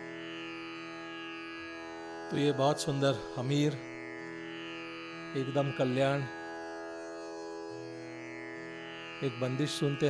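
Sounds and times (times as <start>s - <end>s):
tanpura drone: 0.0s - 10.0s.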